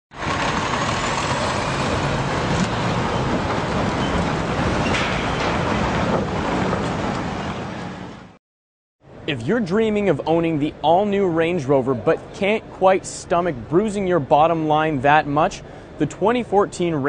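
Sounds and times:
motor vehicle running: 0:00.1 - 0:08.4.

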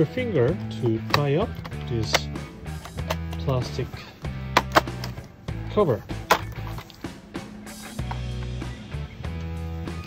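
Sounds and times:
background music: 0:00.0 - 0:10.0
plastic clips snapping loose: 0:01.0 - 0:03.5, 0:04.5 - 0:05.3.

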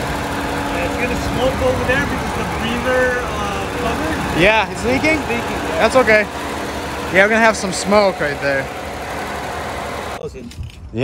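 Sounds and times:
low rumble: 0:00.0 - 0:06.4
car engine idling: 0:00.0 - 0:10.5.

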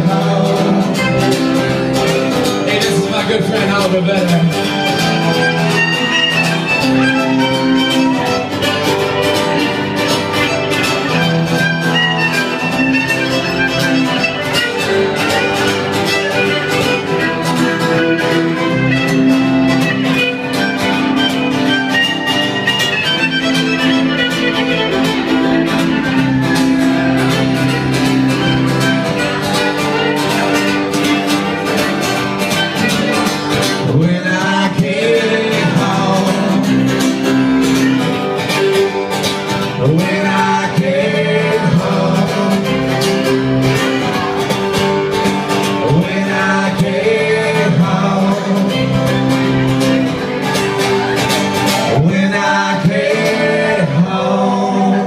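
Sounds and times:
person singing: 0:00.0 - 0:44.7, 0:45.5 - 0:55.0
strummed acoustic guitars: 0:00.0 - 0:55.0
fiddle playing lead: 0:00.8 - 0:34.0, 0:48.6 - 0:51.8.

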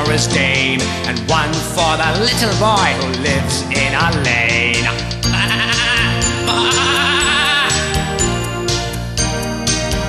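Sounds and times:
backing music: 0:00.0 - 0:10.0
sheep bleating: 0:05.2 - 0:07.9.

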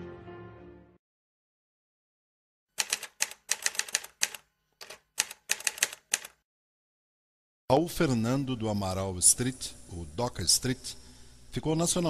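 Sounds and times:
typewriter keys clacking: 0:02.8 - 0:06.4.

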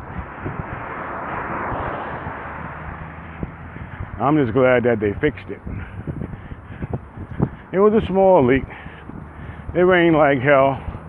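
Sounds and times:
low rumble: 0:00.0 - 0:07.8
car passing on road: 0:00.0 - 0:11.0.

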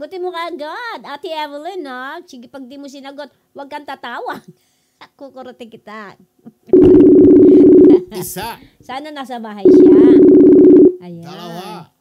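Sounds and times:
telephone ringback tone: 0:06.7 - 0:08.0, 0:09.7 - 0:11.0.

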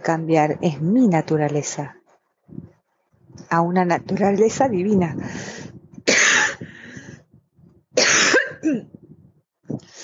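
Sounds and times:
person coughing: 0:06.1 - 0:06.6, 0:08.0 - 0:09.0.

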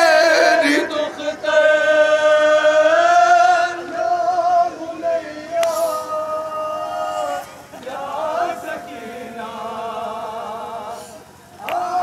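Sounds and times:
men chanting a lament in unison: 0:00.0 - 0:12.0.

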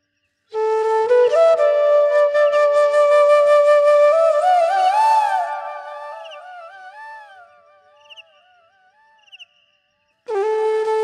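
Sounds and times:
bamboo flute solo: 0:00.5 - 0:07.8, 0:10.3 - 0:11.0.

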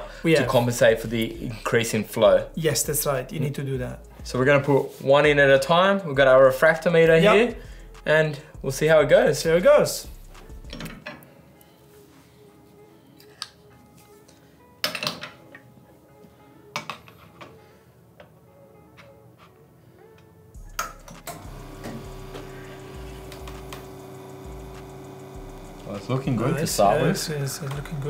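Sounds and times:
clinks and knocks: 0:14.8 - 0:15.6
espresso machine pump humming: 0:21.3 - 0:28.0.

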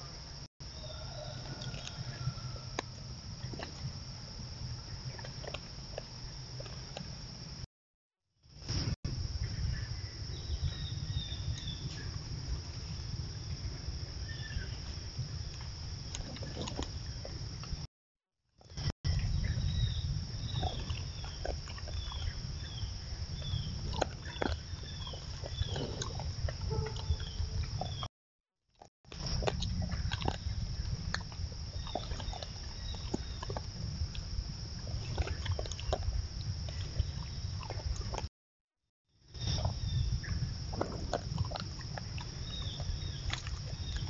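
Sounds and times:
bear crunching and chewing: 0:01.3 - 0:07.4, 0:14.6 - 0:17.8, 0:20.5 - 0:28.0, 0:28.8 - 0:38.3, 0:40.7 - 0:44.0
steady low rumble: 0:18.8 - 0:28.1.

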